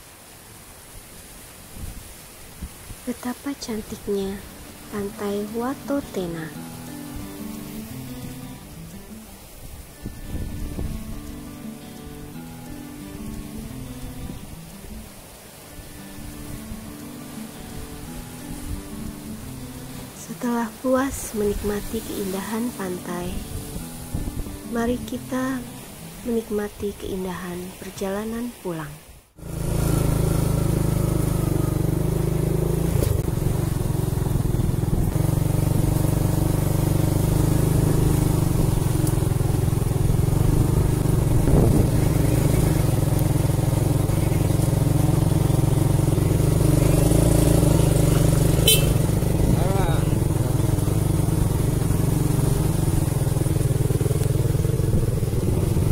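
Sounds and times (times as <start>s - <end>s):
motorcycle engine running: 3.6s - 11.4s, 29.4s - 55.9s.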